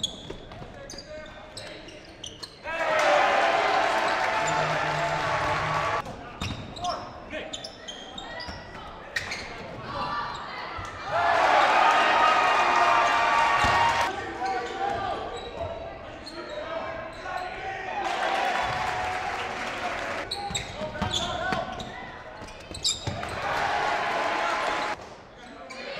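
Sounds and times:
voices of players and spectators: 0.0 - 25.9.

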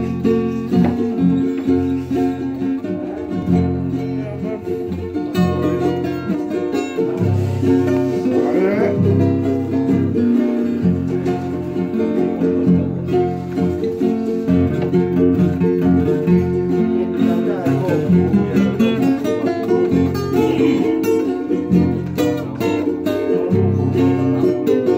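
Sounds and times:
guitars and ukuleles strumming: 0.0 - 24.9.

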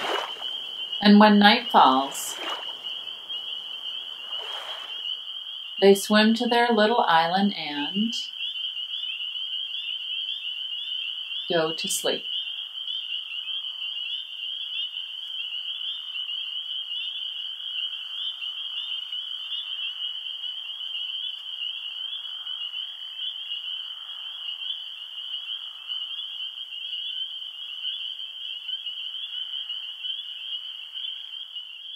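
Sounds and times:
frog chorus trilling: 0.0 - 31.9.

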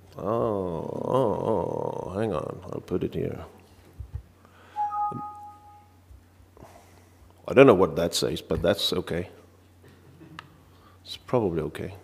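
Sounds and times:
two-note electronic chime: 4.8 - 5.9.

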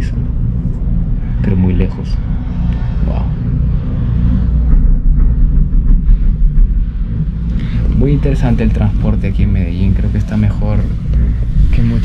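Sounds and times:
gondola cabin rumble: 0.0 - 12.0.

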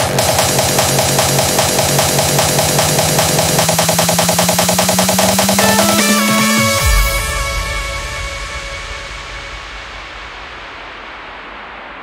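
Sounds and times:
sustained synth chord: 0.0 - 11.8
white-noise sweep: 0.0 - 12.0.

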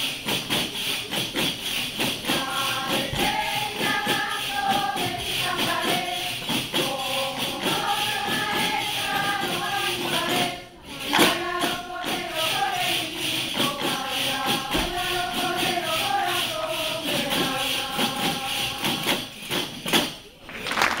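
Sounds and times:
frame drums with jingles: 0.0 - 20.4
choir singing: 2.1 - 19.5.

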